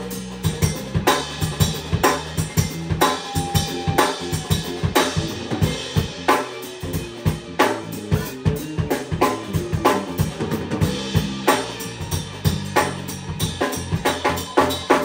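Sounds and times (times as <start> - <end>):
drum kit beat: 0.0 - 15.0.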